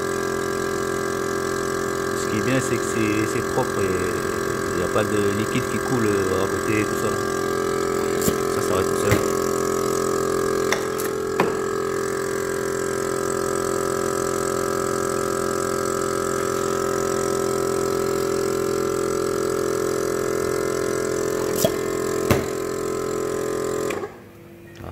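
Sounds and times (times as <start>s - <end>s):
vacuum pump humming: 0.0s - 24.7s.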